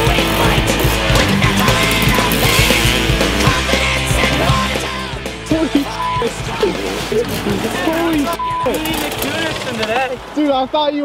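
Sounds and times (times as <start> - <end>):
loud rock music with drum beat: 0.0 - 10.4.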